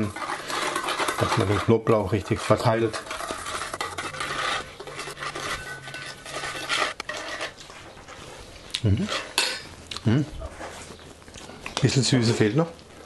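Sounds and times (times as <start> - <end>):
metal spoon stirring in steel bowl: 0.0 - 7.8, 9.0 - 9.8.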